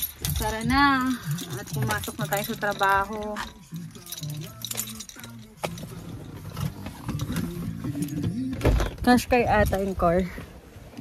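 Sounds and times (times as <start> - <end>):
handling noise: 0.0 - 9.9.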